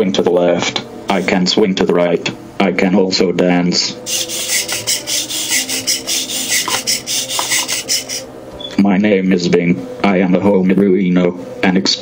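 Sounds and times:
servo motors buzzing and grinding: 4.1s - 8.3s.

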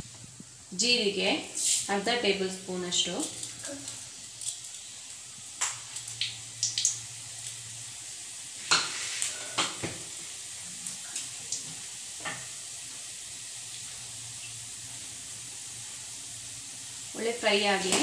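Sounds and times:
seeds sizzling in hot oil: 0.0s - 18.0s.

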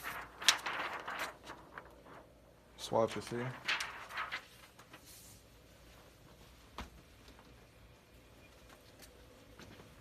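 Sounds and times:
plastic film crackle: 0.0s - 5.1s
stiff plastic sheet rustling: 0.0s - 6.5s.

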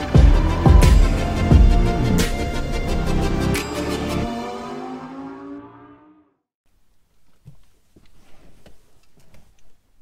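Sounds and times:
intro music: 0.0s - 6.0s.

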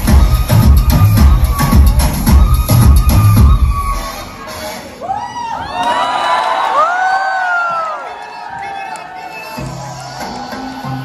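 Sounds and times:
dance music with heavy bass: 0.0s - 4.8s
audience cheering and screaming: 4.9s - 11.0s.

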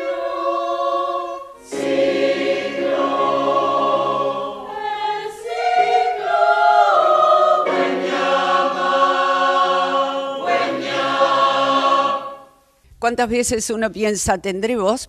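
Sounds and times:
mixed choir singing sustained chords: 0.0s - 12.8s.

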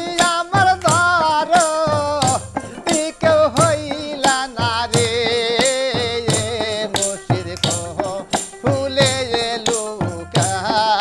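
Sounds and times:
hand frame drums beating: 0.0s - 11.0s
jingling tambourine: 0.0s - 11.0s
men singing: 0.0s - 11.0s.

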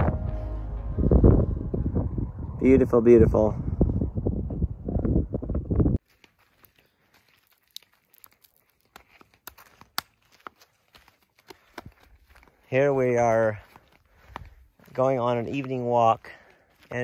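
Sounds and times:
wind buffeting microphone: 0.0s - 6.0s
footsteps on sandy dirt: 6.0s - 17.0s.

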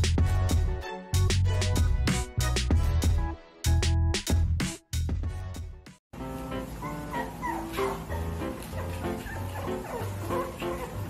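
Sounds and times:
background music: 0.0s - 11.0s
puppies whining and yelping: 6.8s - 11.0s.

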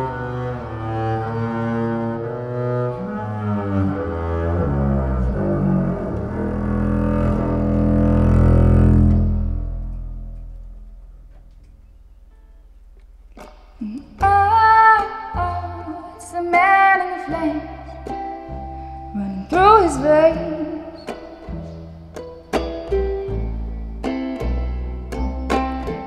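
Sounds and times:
bowed double bass: 0.0s - 26.0s
higher held notes: 4.1s - 26.0s.

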